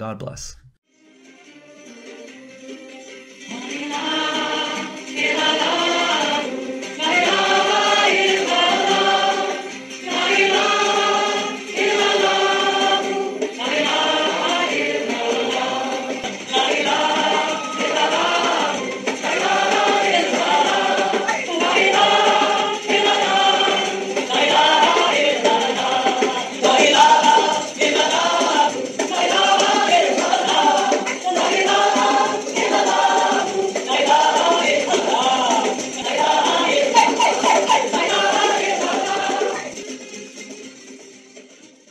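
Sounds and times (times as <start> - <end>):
music with sung vocals: 1.0 - 41.9.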